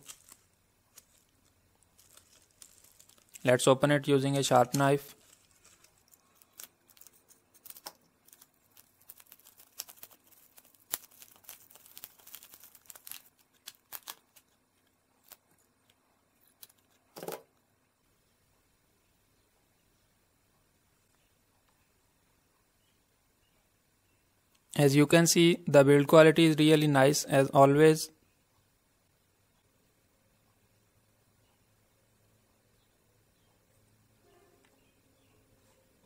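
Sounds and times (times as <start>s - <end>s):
plastic rustle: 0.0s - 3.8s, 4.4s - 15.6s
bubble wrap crackling: 0.0s - 17.1s.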